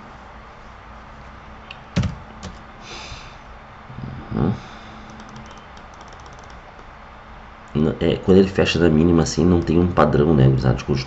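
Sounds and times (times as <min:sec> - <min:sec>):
steady low hum: 0:00.0 - 0:11.0
light computer clicks: 0:05.1 - 0:06.9.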